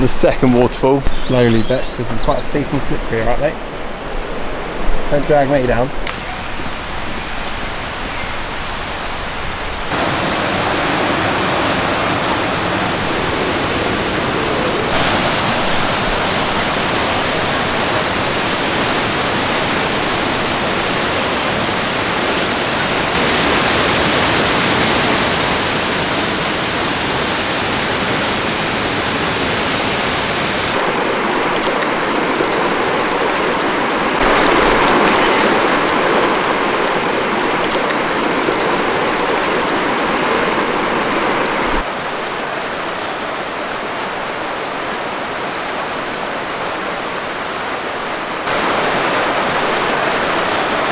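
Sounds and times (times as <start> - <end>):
waterfall rushing over rocks: 4.7 - 50.9.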